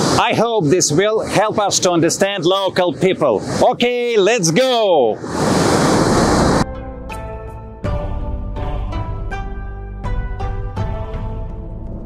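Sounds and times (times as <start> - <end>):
waterfall rushing: 5.2 - 6.6.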